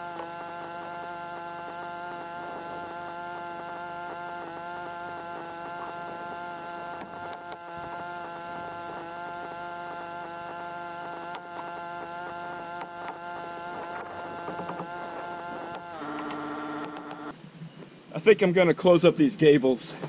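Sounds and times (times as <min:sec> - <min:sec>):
air compressor humming: 0:00.0 - 0:17.4
low buzz: 0:00.0 - 0:17.4.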